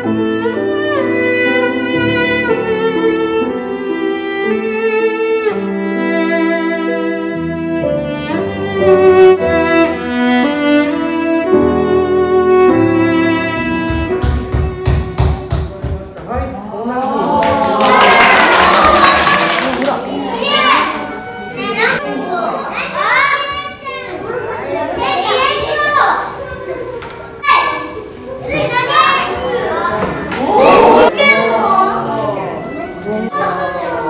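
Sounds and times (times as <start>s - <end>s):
children calling out: 16.9s - 34.0s.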